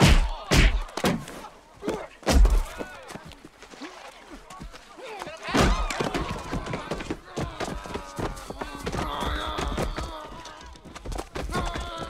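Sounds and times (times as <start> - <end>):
men grunting: 5.5 - 12.0.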